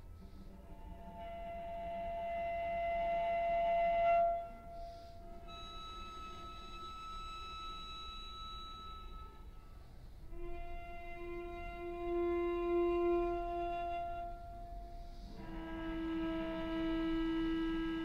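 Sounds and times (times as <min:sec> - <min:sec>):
cello bowed sustained notes: 0:00.0 - 0:18.0.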